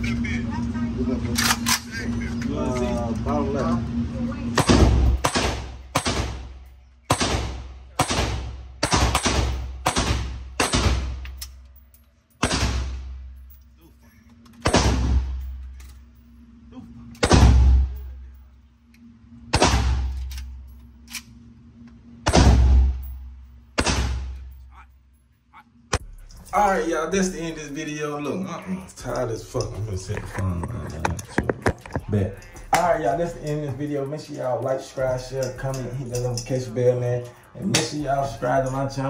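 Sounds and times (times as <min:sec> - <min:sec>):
echoing gunshots indoors: 0:04.6 - 0:11.5, 0:12.4 - 0:13.3, 0:14.6 - 0:15.6, 0:17.2 - 0:18.1, 0:19.4 - 0:21.5, 0:22.1 - 0:24.6.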